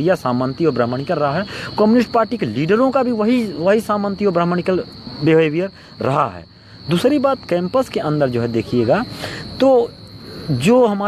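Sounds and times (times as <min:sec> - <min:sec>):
high-pitched insect trill: 0:00.0 - 0:11.0
man talking: 0:00.0 - 0:11.0.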